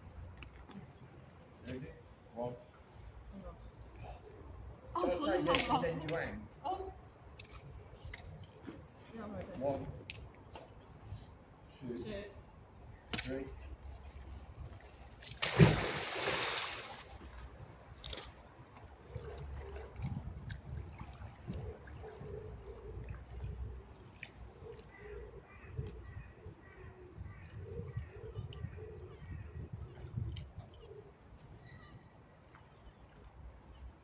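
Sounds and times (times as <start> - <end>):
magnet splashing into water: 15.3 - 17.2.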